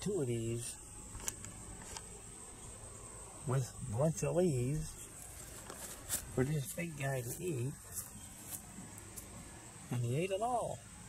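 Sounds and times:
man speaking: 0:00.0 - 0:00.8, 0:03.4 - 0:05.0, 0:06.4 - 0:07.9, 0:09.9 - 0:10.8
insects droning: 0:00.0 - 0:11.0.

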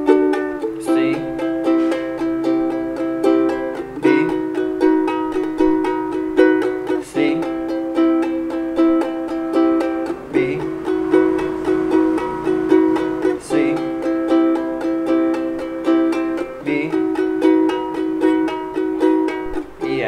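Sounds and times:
ukulele strumming: 0:00.0 - 0:20.0.

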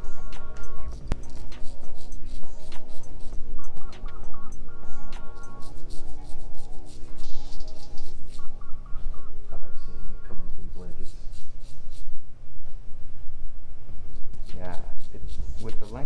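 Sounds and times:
background music melody: 0:00.0 - 0:10.9.

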